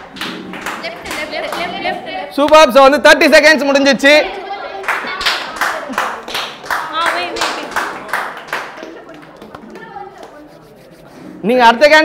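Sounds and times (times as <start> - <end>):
group clapping rhythmically: 0.0 - 2.7, 4.2 - 11.0.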